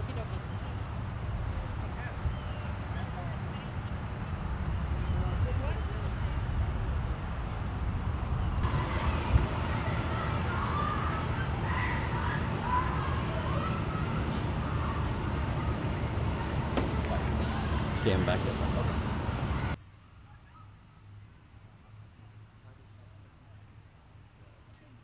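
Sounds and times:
faint distant voices: 0:00.0 - 0:07.0, 0:08.6 - 0:25.0
road traffic rumble: 0:00.0 - 0:25.0.

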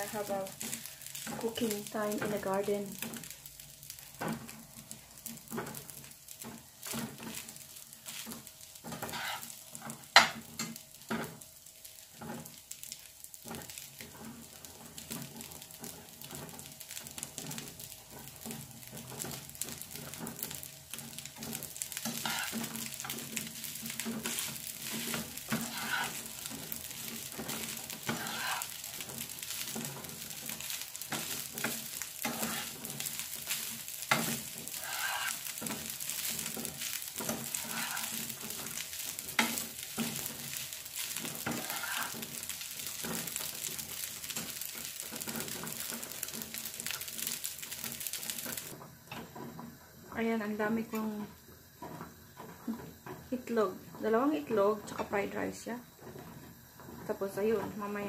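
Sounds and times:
spatula scraping a pan: 0:00.0 - 0:49.6, 0:56.0 - 0:57.8
rice sizzling in a frying pan: 0:00.0 - 0:58.0.

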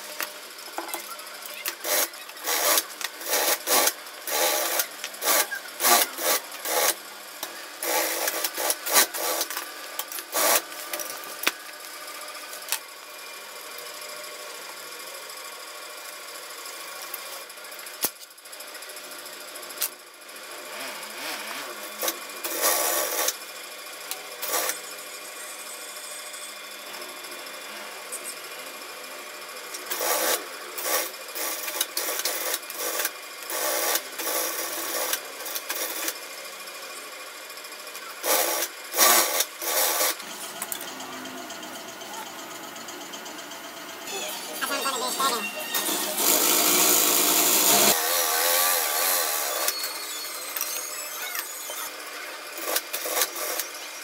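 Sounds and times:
sewing machine motor running: 0:00.0 - 0:54.0
stitching bursts: 0:01.5 - 0:07.0.

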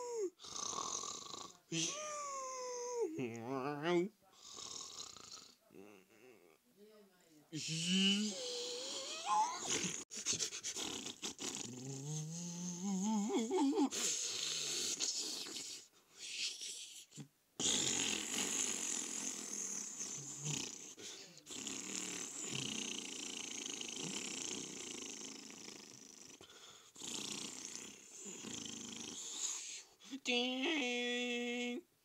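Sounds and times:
cartoon duck snoring: 0:00.0 - 0:02.0, 0:07.6 - 0:13.4, 0:17.6 - 0:29.8.

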